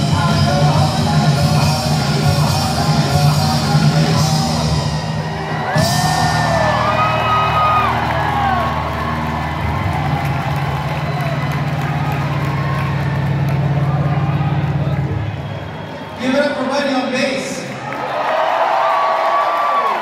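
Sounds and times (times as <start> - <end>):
crowd cheering and whooping: 4.5 - 16.6, 17.7 - 20.0
gliding whistles: 15.2 - 16.2.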